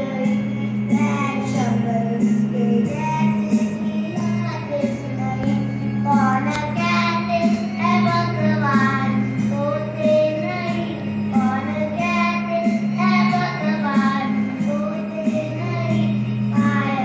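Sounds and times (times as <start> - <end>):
boy singing: 0.0 - 17.0
electronic keyboard chords: 0.0 - 17.0.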